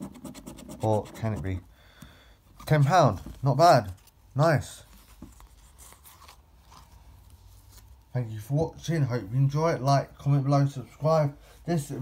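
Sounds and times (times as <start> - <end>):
cardboard card rustling and scraping: 4.8 - 8.1.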